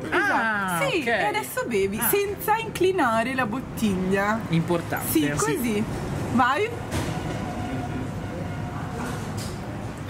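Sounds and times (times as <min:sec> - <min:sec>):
low street background rumble: 0:00.0 - 0:10.0.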